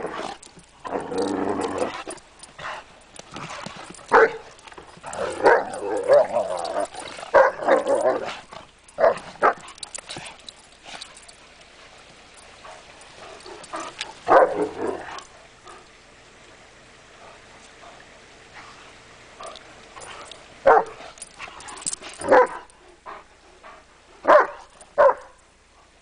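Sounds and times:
dogs growling: 0.0 - 11.3, 12.6 - 15.9, 19.4 - 23.3
dogs barking: 3.5 - 8.4, 9.0 - 9.9, 13.3 - 15.3, 19.4 - 22.7, 24.2 - 25.4.

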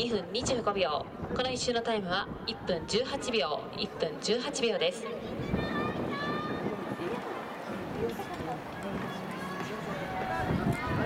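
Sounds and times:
distant people calling and talking: 0.0 - 11.0
open-air background noise: 0.0 - 11.0.

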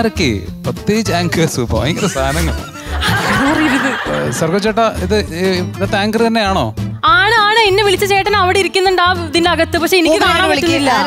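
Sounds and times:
people talking and laughing: 1.0 - 6.2
audience laughter: 1.8 - 4.9.

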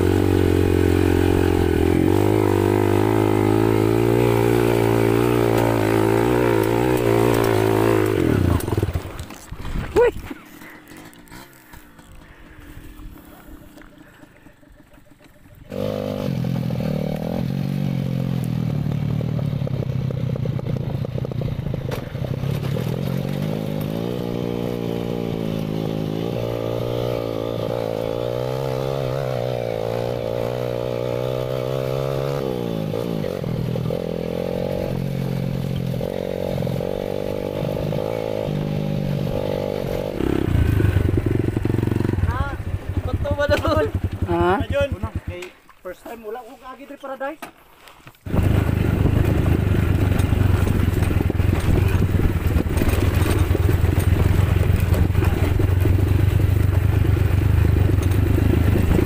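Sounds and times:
dirt bike engine revving: 0.0 - 45.6, 48.2 - 59.0.

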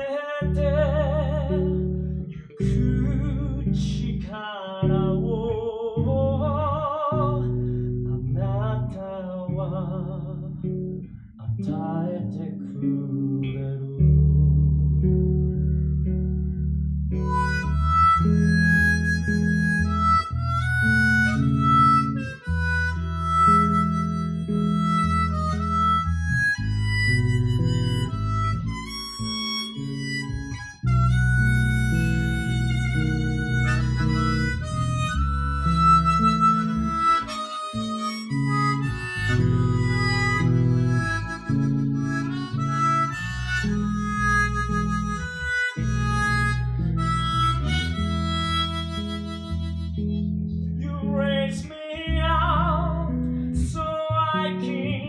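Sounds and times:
plucked electric bass: 0.0 - 55.0
harmonica solo: 17.1 - 50.7.

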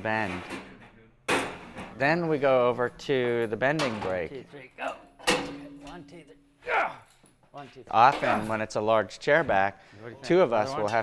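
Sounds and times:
sharp metallic clank: 5.2 - 6.2.

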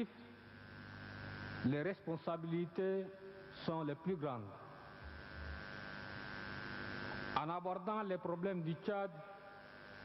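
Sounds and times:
steady hiss: 0.0 - 7.5
low mains hum: 0.0 - 10.0.

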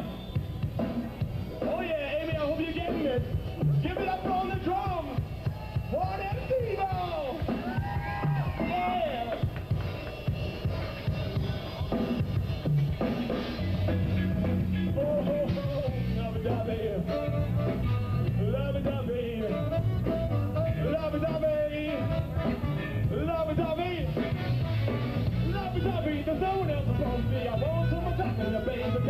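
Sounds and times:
bass guitar groove: 0.0 - 29.0
drum kit: 0.0 - 29.0.

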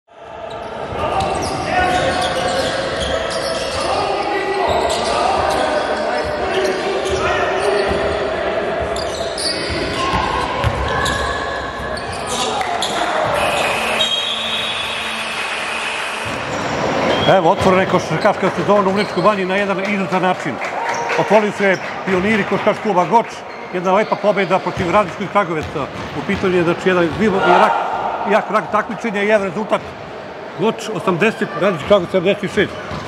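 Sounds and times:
indistinct shouts echoing: 0.1 - 25.6, 26.2 - 33.0.

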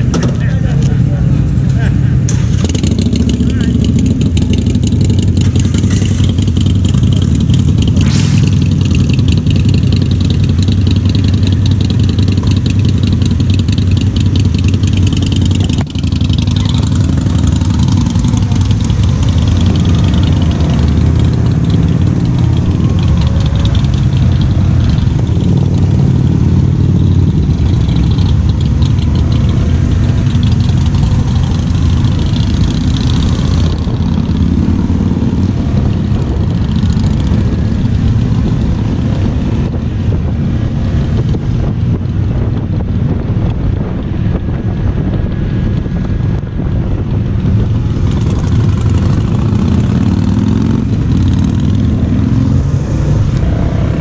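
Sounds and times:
motorcycle engines idling: 0.0 - 54.0.

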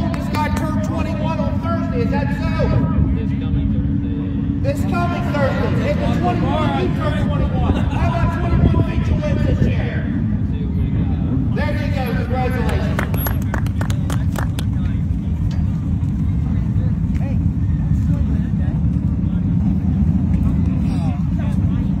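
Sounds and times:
faint voices: 0.0 - 22.0
race cars rumbling: 0.0 - 22.0.

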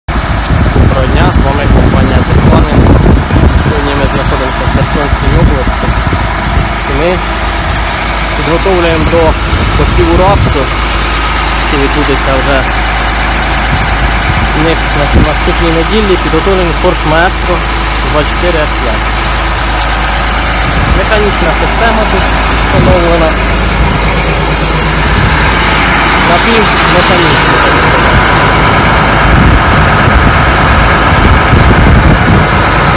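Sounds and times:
tractor diesel engine idling: 0.1 - 32.9
voices talking: 0.9 - 31.1.

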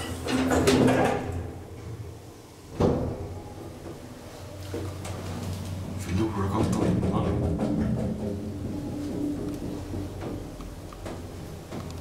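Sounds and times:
elevator doors shutting: 0.0 - 2.1, 2.7 - 12.0
low hum: 1.5 - 12.0.

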